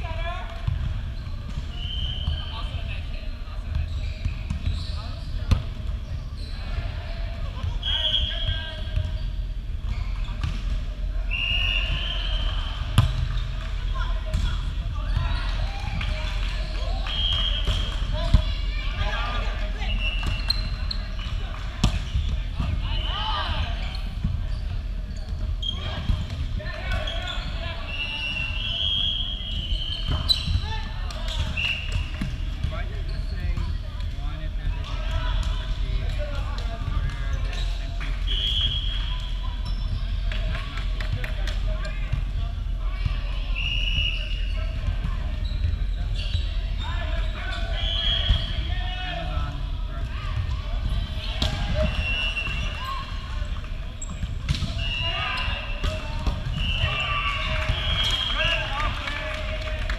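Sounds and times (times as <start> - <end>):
low hum of large hall: 0.0 - 59.9
sneakers squeaking on court: 3.6 - 6.8, 19.9 - 23.1, 29.4 - 30.8, 39.6 - 40.2, 44.6 - 48.6, 50.8 - 57.0
volleyball thumps: 12.9 - 13.7.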